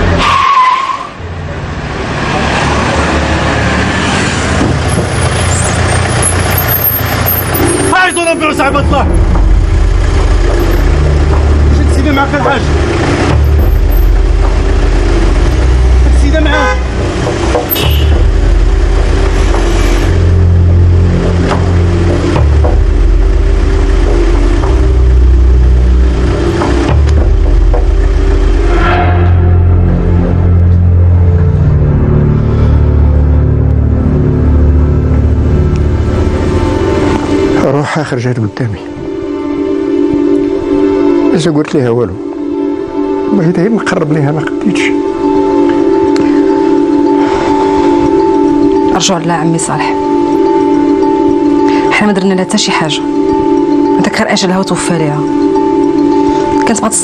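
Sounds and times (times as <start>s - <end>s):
rush of passing cars: 0.0s - 57.0s
car speeding past: 1.5s - 7.9s
low film score bass notes: 7.1s - 57.0s.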